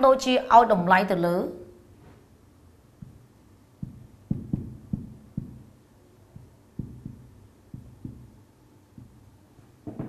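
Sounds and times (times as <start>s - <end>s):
marker pen knocking on whiteboard: 3.0s - 10.0s.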